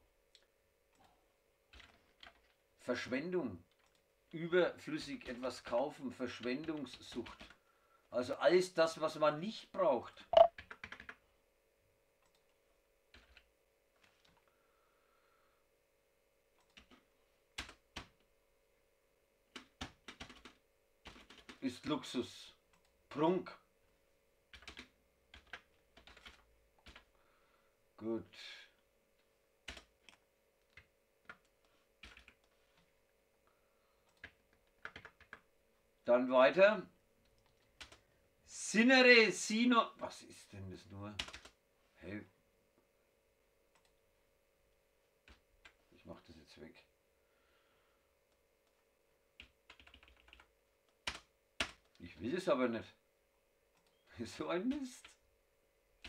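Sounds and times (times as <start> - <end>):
faint keystrokes on computer keyboard: 0.3 - 2.6, 3.7 - 4.1, 6.4 - 7.6, 10.4 - 11.2, 12.2 - 14.5, 16.5 - 18.3, 19.5 - 21.6, 24.5 - 27.2, 29.2 - 32.9, 34.0 - 35.5, 37.2 - 38.0, 41.2 - 41.6, 48.3 - 52.1.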